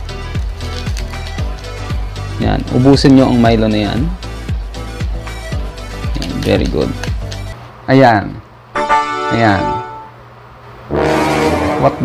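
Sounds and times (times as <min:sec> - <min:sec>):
low flat comedy horn tone: 0:08.8 - 0:10.2, 0:10.9 - 0:12.0.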